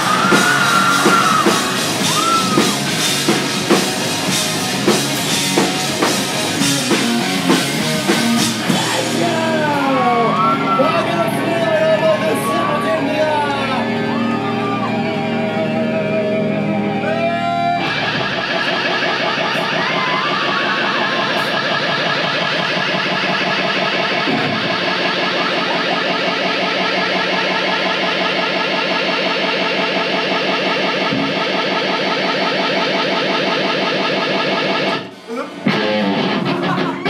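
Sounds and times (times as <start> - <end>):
distorted electric guitars: 0.0 - 37.0.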